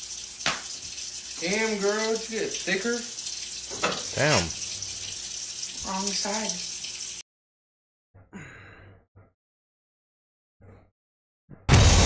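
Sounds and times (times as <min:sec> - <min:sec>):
man sighing: 0:04.2 - 0:04.6, 0:08.4 - 0:08.8.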